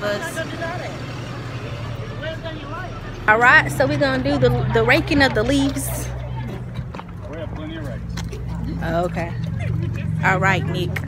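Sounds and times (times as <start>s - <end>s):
people chattering outdoors: 0.0s - 11.0s
vehicle engine idling: 0.0s - 11.0s.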